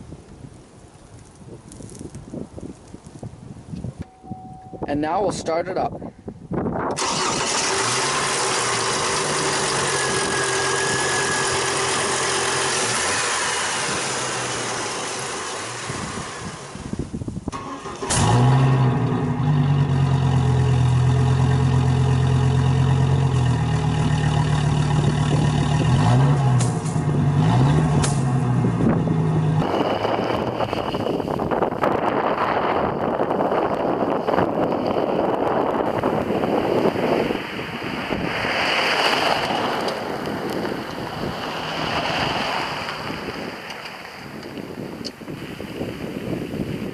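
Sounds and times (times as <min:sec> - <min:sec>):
wind noise on microphone: 0:00.0 - 0:46.9
engine throttle blips: 0:06.9 - 0:38.4.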